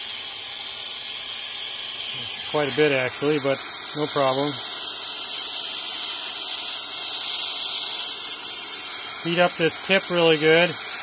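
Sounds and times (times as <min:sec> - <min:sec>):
gas torch hissing: 0:00.0 - 0:11.0.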